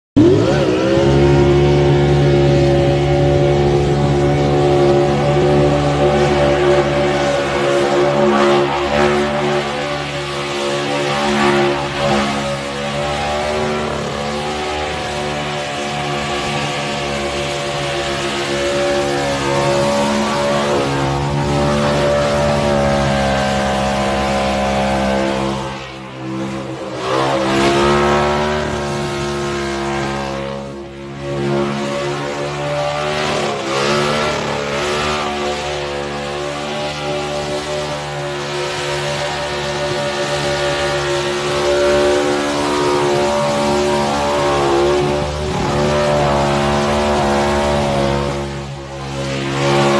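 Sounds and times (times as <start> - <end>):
engine revving at high revs: 0.2 - 49.9.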